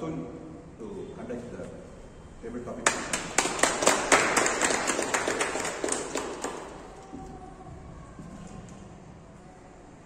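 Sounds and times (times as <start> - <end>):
audience clapping: 2.8 - 7.0.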